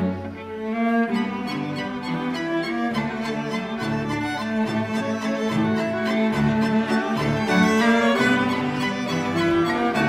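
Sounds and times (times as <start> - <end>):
string quartet playing softly: 0.0 - 10.0.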